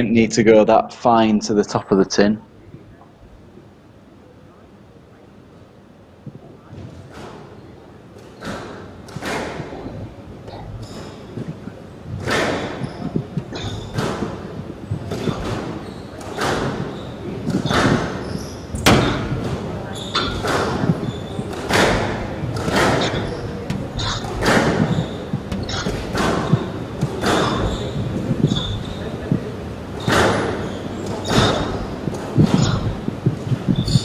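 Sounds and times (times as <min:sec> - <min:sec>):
squash ball struck by rackets: 0:08.2 - 0:09.9, 0:12.1 - 0:29.4, 0:30.0 - 0:34.0
ball slapping off walls: 0:12.2 - 0:33.7
shoe squeaks on court floor: 0:14.9 - 0:19.2, 0:19.8 - 0:29.2, 0:30.0 - 0:33.0, 0:33.7 - 0:34.0.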